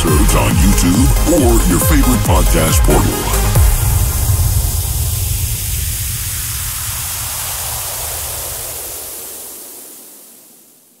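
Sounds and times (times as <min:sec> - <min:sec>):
low bass rumble: 0:00.0 - 0:08.7
hissing noise: 0:00.9 - 0:10.9.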